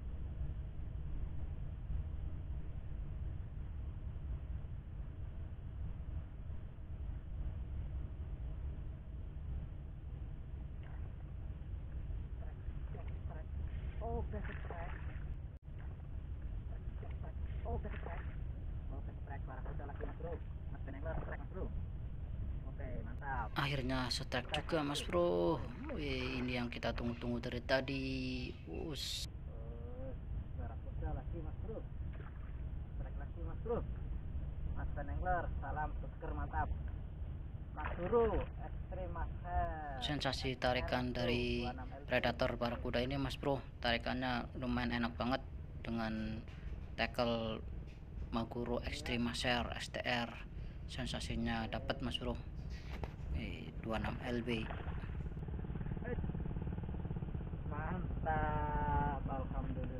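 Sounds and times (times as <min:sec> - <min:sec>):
wind rumble on microphone: 0:00.0 - 0:59.9.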